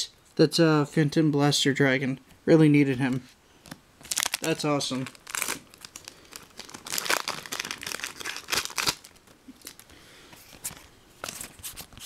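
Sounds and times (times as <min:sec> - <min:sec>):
foil wrapper crinkling and tearing: 0:04.0 - 0:09.9.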